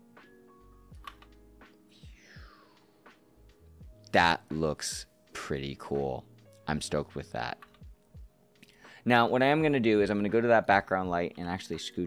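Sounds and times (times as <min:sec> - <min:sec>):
quiet background music: 0:00.0 - 0:12.0
faint computer clicks: 0:01.0 - 0:01.3.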